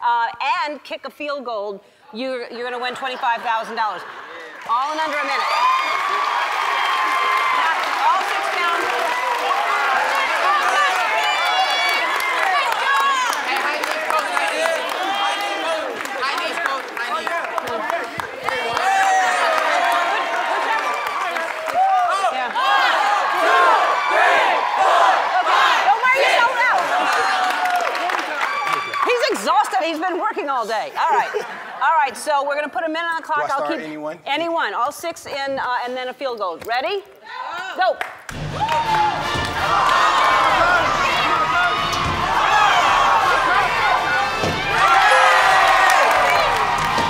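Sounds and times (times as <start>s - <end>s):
crowd cheering and whooping: 5.2s - 16.1s, 18.4s - 29.4s, 38.3s - 47.0s.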